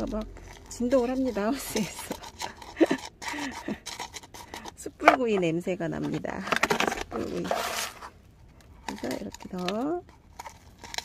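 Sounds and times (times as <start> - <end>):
woman laughing breathily: 2.4 - 4.0.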